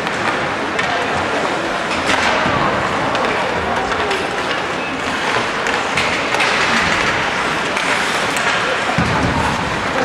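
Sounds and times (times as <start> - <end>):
hockey sticks clacking: 0.0 - 10.0
skates scraping ice: 0.0 - 10.0.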